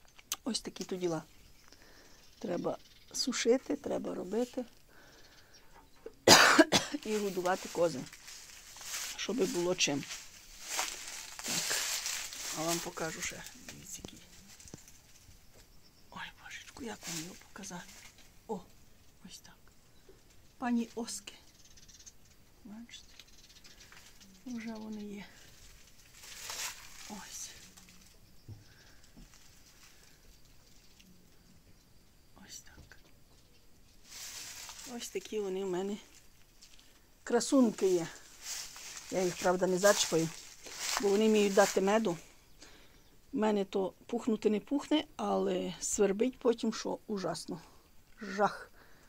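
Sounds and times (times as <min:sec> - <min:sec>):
faint background hiss: 0:00.0 - 0:49.0
person coughing: 0:06.2 - 0:07.1.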